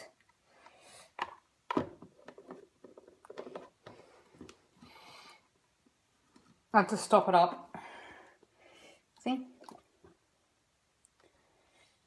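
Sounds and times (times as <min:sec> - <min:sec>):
plastic cups clicking and knocking: 0:01.1 - 0:04.6.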